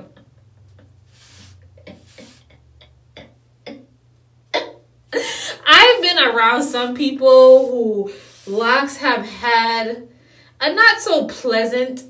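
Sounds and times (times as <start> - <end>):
low steady hum: 0.0 - 12.0
woman inhaling with hiss: 1.1 - 2.6, 8.1 - 8.5
woman coughing: 4.6 - 5.4.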